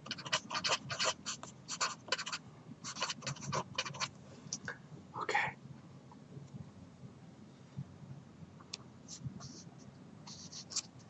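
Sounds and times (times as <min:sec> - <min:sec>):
marker pen writing on paper: 0:00.0 - 0:04.1, 0:09.1 - 0:11.0.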